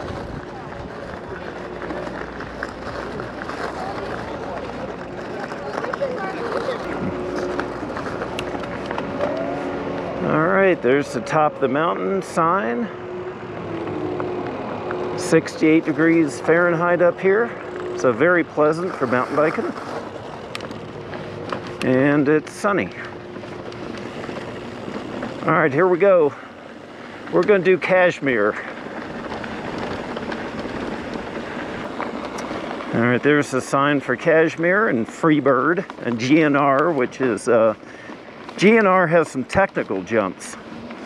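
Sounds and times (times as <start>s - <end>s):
wind noise on microphone: 0.0s - 1.5s, 6.8s - 7.6s
bike rolling over gravel: 0.0s - 41.0s.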